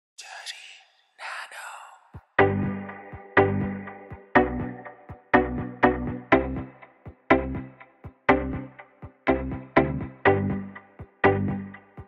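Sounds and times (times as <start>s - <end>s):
person whispering: 0.2s - 2.2s.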